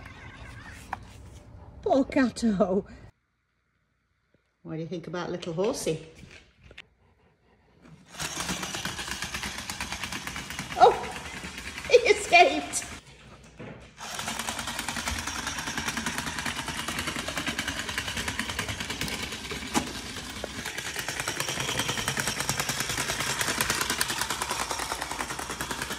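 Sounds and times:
toy motor and gears running: 8.0 - 13.0, 14.0 - 25.9.

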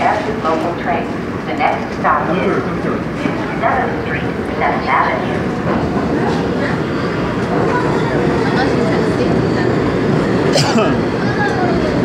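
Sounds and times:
indistinct voices: 0.0 - 12.0
subway train rumble and hum: 0.0 - 12.0.

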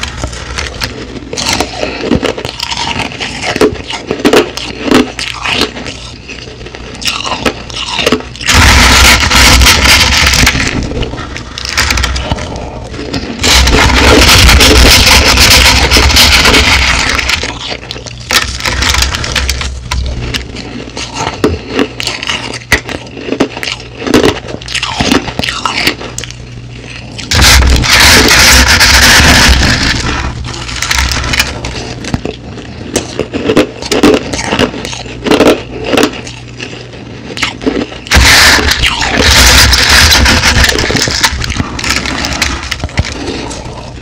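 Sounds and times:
crushed ice crunching: 0.0 - 26.3, 26.9 - 43.8.

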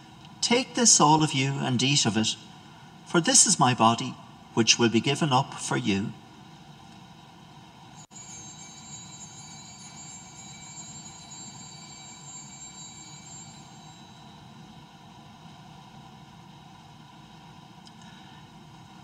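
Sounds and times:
church room tone: 0.0 - 6.4
small altar bell ringing: 8.0 - 15.1.

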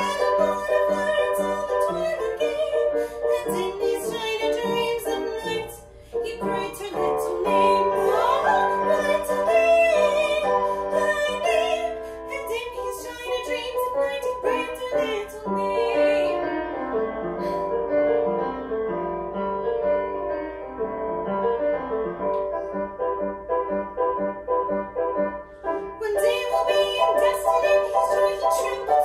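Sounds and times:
woman singing operatically: 0.0 - 16.4, 25.9 - 29.0
piano accompaniment: 0.0 - 29.0.

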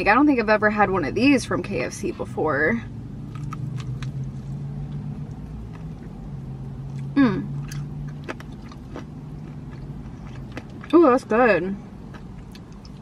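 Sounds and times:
low hum: 0.0 - 13.0
crunchy chewing: 3.2 - 11.0, 11.9 - 13.0
person humming mm: 7.2 - 7.6.

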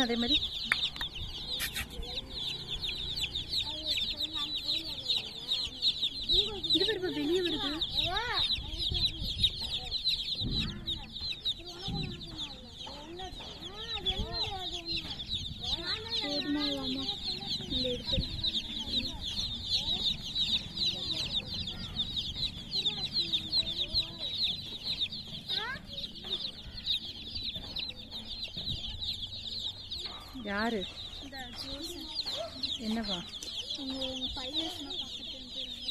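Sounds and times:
baby chicks peeping: 0.0 - 35.9.

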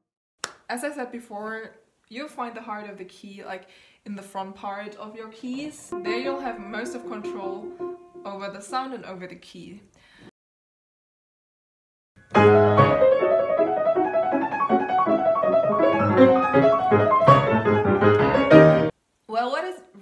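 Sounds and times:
grand piano passage: 5.9 - 8.8, 12.2 - 18.9.

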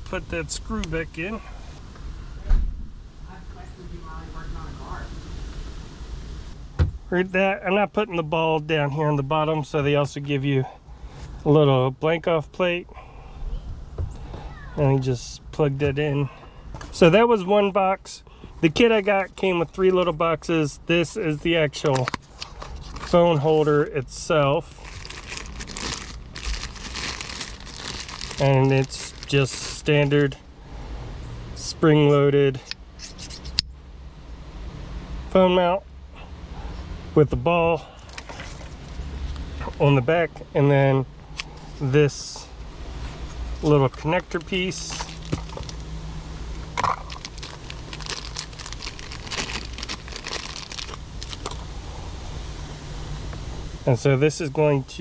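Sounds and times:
cardboard and plastic packaging rustling: 21.7 - 23.8, 24.7 - 30.4, 38.1 - 39.0, 43.0 - 45.9, 46.8 - 51.7
plastic bag crinkling: 24.7 - 30.2, 44.3 - 45.9, 46.9 - 51.6.

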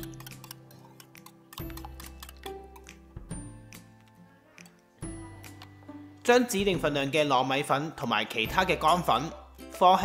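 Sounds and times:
whisk ticking against bowl: 0.0 - 3.0
background music: 0.0 - 10.0.

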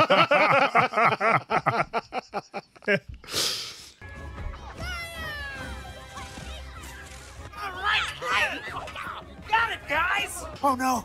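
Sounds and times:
people laughing: 0.0 - 3.1.

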